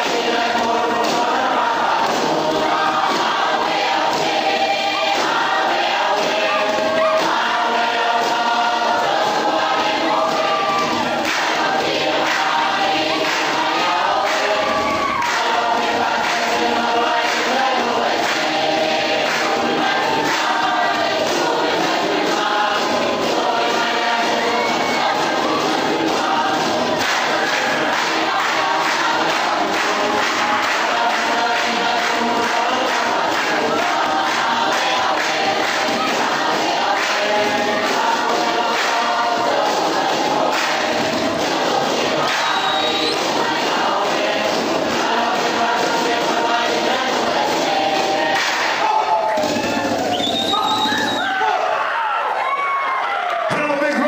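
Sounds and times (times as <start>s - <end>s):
steady beat: 0.0s - 50.1s
group of voices singing: 0.0s - 52.1s.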